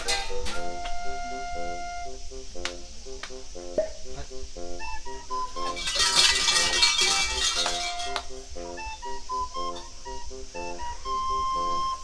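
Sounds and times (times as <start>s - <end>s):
background music: 0.0s - 12.0s.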